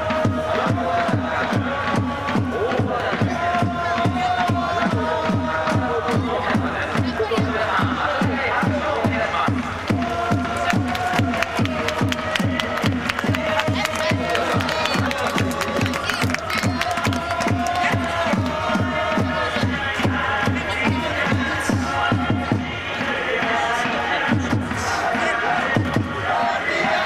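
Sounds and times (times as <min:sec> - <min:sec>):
bass drum beating: 0:00.0 - 0:23.1, 0:24.2 - 0:26.3
football supporters chanting: 0:00.0 - 0:27.0.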